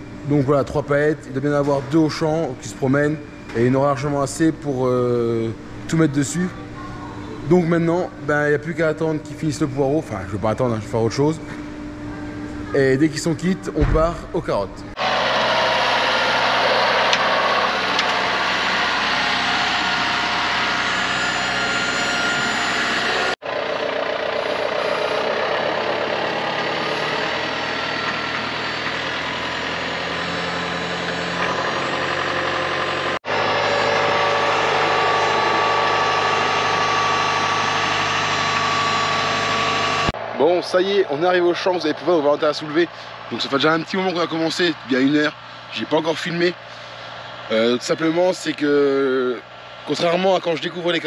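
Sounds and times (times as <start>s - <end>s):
tractor diesel engine running: 0.0s - 51.0s.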